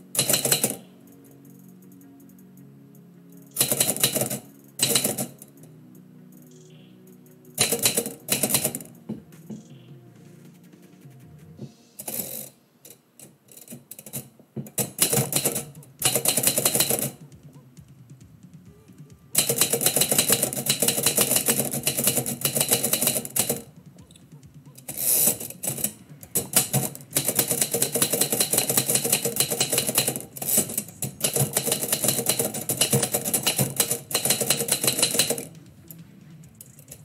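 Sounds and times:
typewriter keystrokes: 0:00.0 - 0:02.0, 0:03.5 - 0:05.7, 0:07.5 - 0:09.0, 0:13.2 - 0:17.3, 0:19.3 - 0:35.6.

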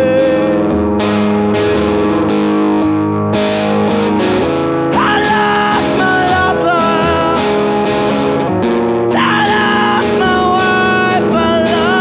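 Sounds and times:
live rock band with electric guitar: 0:00.0 - 0:12.0.

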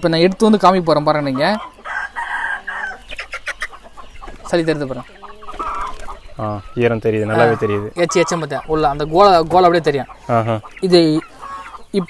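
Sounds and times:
chickens calling: 0:00.0 - 0:12.0.

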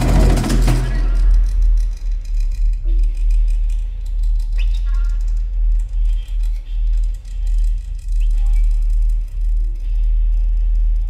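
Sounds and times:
deep low pulsing rumble: 0:00.0 - 0:11.0.

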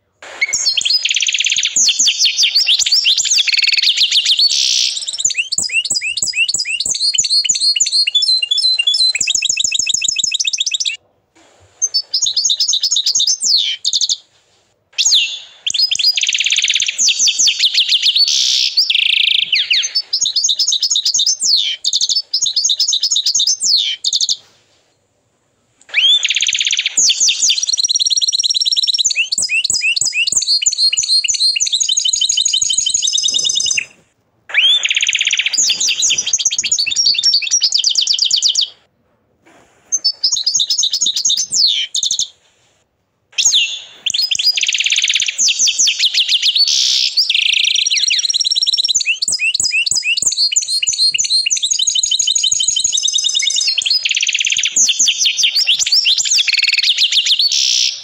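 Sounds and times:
canary singing trills: 0:00.2 - 0:11.0, 0:11.7 - 0:14.3, 0:15.0 - 0:24.5, 0:25.9 - 0:38.9, 0:39.9 - 0:42.4, 0:43.4 - 0:58.0.

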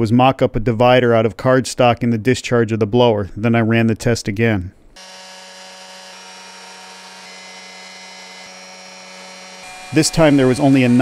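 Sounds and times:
supercharger humming and whining: 0:05.0 - 0:11.0.

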